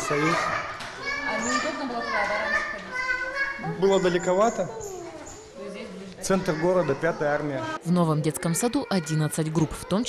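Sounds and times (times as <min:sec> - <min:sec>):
young children's voices: 0:00.0 - 0:10.0
small child talking: 0:00.3 - 0:03.8, 0:04.8 - 0:05.6.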